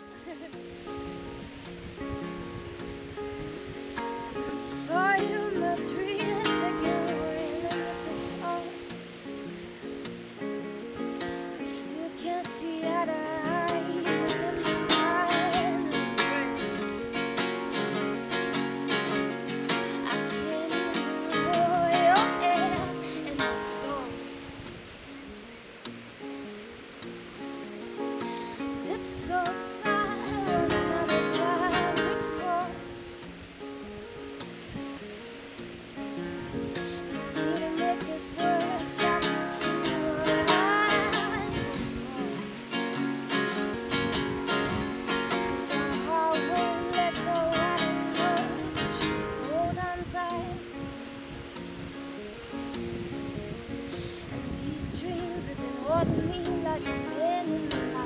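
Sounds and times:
acoustic guitar picking: 0:00.0 - 0:58.0
background noise: 0:00.0 - 0:58.0.

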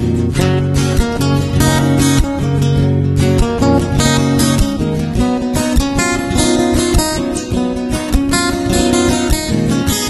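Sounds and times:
strummed acoustic guitar music: 0:00.0 - 0:10.0.

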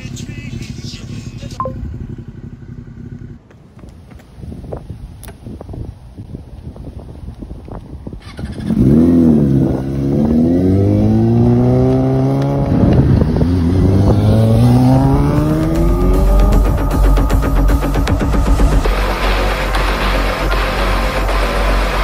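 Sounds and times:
motorcycle engine accelerating: 0:00.0 - 0:06.9, 0:08.0 - 0:22.0.

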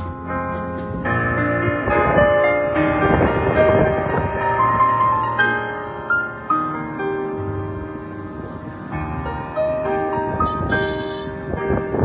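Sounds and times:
slow piano playing: 0:00.0 - 0:12.0.

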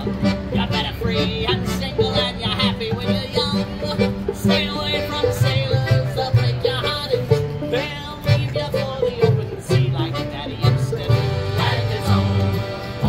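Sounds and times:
acoustic folk band playing: 0:00.0 - 0:13.0
plucked upright bass: 0:00.0 - 0:13.0.

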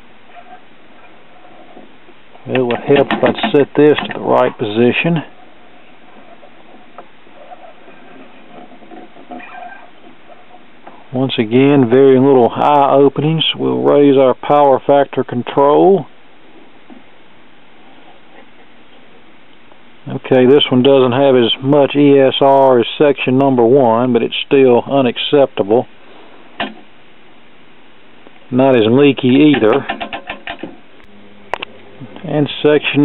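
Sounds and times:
steady background hiss: 0:00.0 - 0:33.0.

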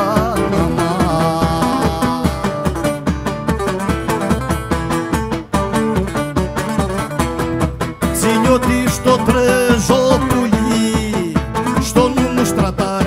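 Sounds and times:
lute plucking quick melody: 0:00.0 - 0:13.0
steady drum beat: 0:00.0 - 0:13.0.

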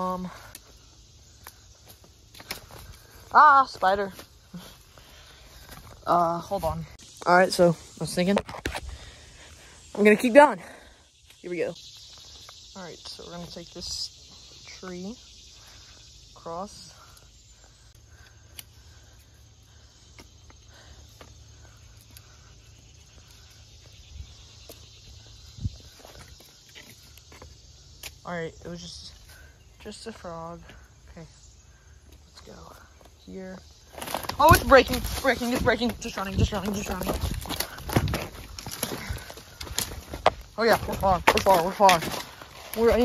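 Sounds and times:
insects chirring: 0:00.0 - 0:43.0
footsteps on leaf litter: 0:33.9 - 0:43.0
handling clicks and bumps: 0:34.0 - 0:43.0.

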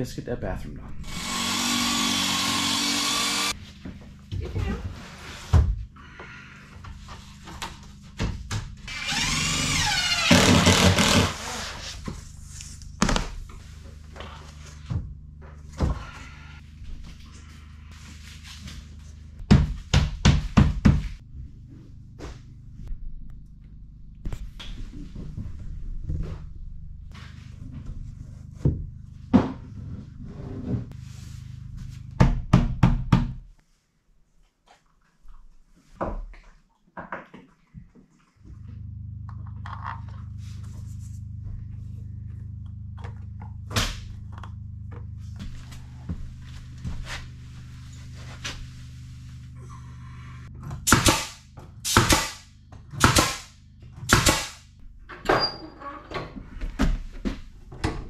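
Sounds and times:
low steady hum: 0:21.2 - 0:33.3, 0:37.8 - 0:54.1.

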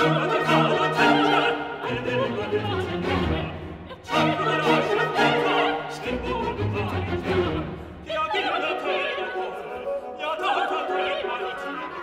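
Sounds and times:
chamber orchestra strings: 0:00.0 - 0:12.0
operatic voices singing: 0:00.0 - 0:12.0.

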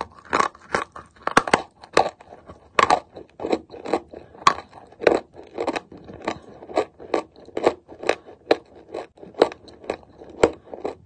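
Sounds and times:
chalk being chewed: 0:00.0 - 0:11.0.

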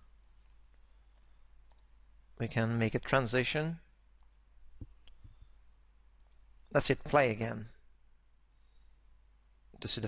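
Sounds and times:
faint computer mouse clicks: 0:01.1 - 0:01.9, 0:04.2 - 0:05.4, 0:06.2 - 0:06.4.

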